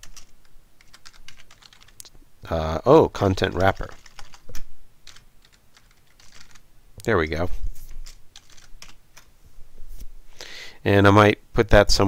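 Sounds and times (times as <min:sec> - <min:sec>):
typing on computer keyboard: 0:00.0 - 0:02.1, 0:03.4 - 0:06.6, 0:08.0 - 0:09.3.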